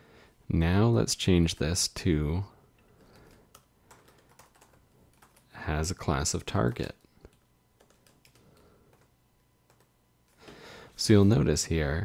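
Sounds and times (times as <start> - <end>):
computer keyboard keystrokes: 2.8 - 5.5, 6.3 - 9.1, 9.7 - 9.9.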